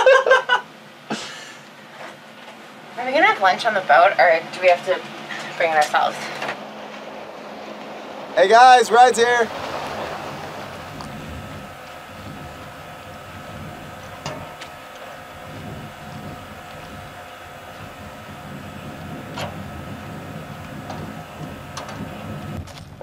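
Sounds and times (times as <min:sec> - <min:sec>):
boat motor running: 0:01.7 - 0:23.0.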